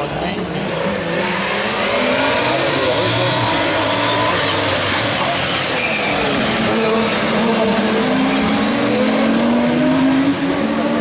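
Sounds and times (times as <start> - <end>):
racing car engines revving: 0.0 - 11.0.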